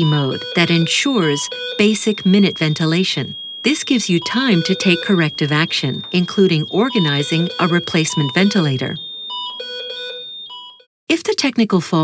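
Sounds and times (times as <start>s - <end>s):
ventilator alarm tones: 0.0s - 10.9s.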